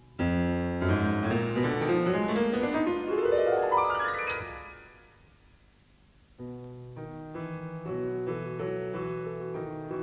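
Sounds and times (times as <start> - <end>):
piano chords and fast run: 0.2 - 5.0.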